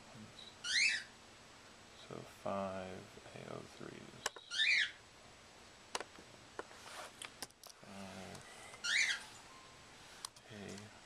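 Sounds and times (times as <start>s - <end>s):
pet bird chirping: 0.4s - 1.1s, 4.2s - 5.0s, 8.8s - 9.8s.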